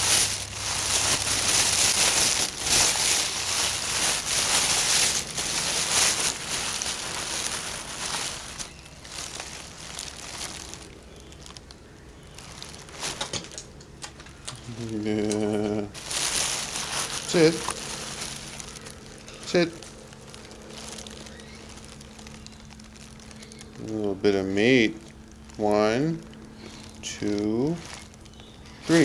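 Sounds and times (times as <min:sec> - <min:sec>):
crinkling crackling rustle: 0:00.0 - 0:29.0
low wavering hum: 0:00.0 - 0:29.0.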